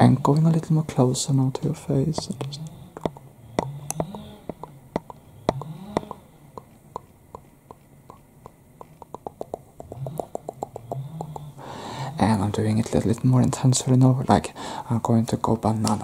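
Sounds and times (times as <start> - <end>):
soft low voice hums: 1.5 - 7.4, 8.1 - 12.6.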